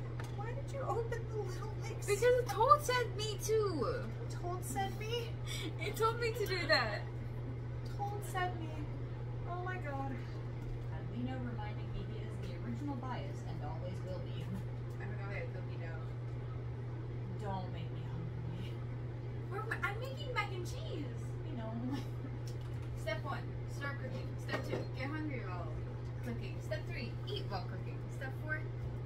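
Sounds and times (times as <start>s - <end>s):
indistinct talking: 0.0s - 7.1s
steady low hum: 0.0s - 29.0s.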